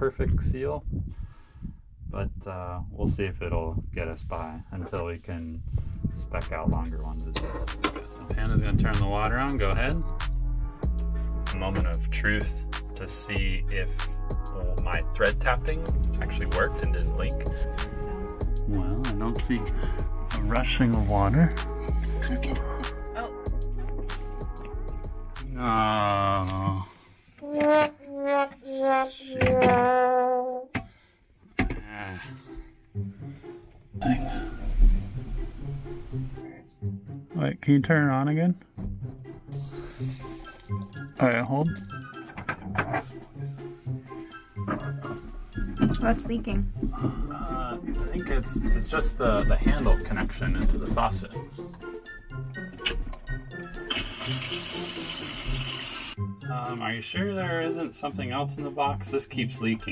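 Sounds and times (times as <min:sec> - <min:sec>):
background music: 0:04.0 - 0:59.9
water spraying from faucet: 0:53.8 - 0:56.2.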